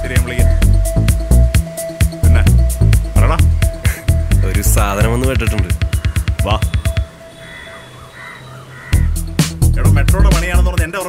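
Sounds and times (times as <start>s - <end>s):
music beat: 0.0s - 7.3s, 8.9s - 11.0s
crows cawing: 0.3s - 1.0s, 3.6s - 9.4s.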